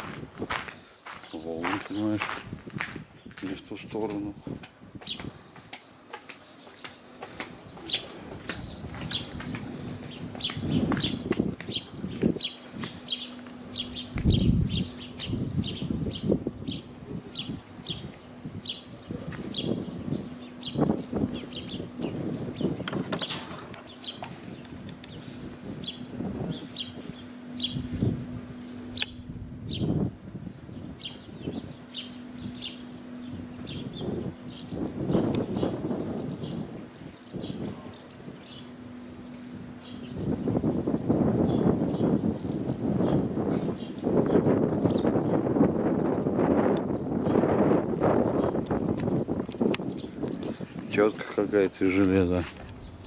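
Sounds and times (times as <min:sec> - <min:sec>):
small birds chirping: 0:00.0 - 0:53.0
faint steady hum: 0:02.5 - 0:53.0.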